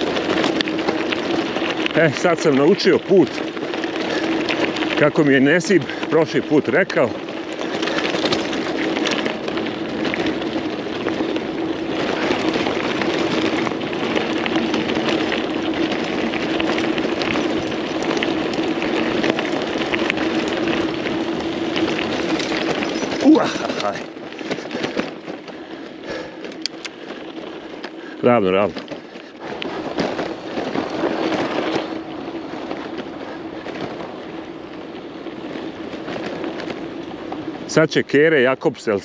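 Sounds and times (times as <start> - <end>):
bike rattling: 0.0 - 39.0
tyres crunching on loose stones: 0.0 - 39.0.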